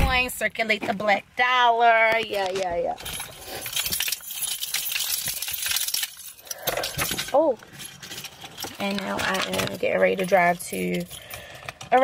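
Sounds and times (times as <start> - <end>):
small clinking clicks: 3.0 - 12.0.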